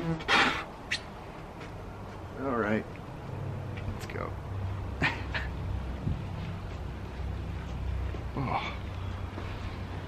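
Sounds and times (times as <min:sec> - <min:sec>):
high-pitched vocal calls: 0:00.4 - 0:01.2.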